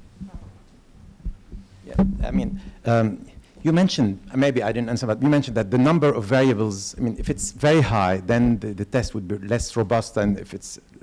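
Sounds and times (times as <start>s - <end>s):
microphone handling thumps: 0.0s - 2.8s.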